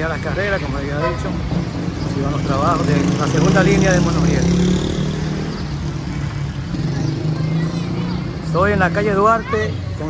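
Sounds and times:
road traffic noise: 0:00.0 - 0:10.0
vehicle engine droning: 0:00.0 - 0:10.0.

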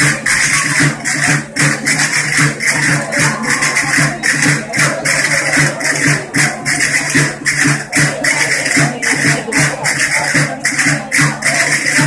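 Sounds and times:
folk dance music: 0:00.0 - 0:12.0
shaking jingling percussion: 0:00.0 - 0:12.0.

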